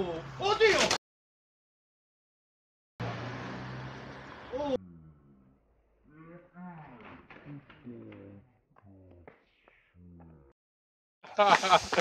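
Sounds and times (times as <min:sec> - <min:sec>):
low hum: 0:04.8 - 0:10.6.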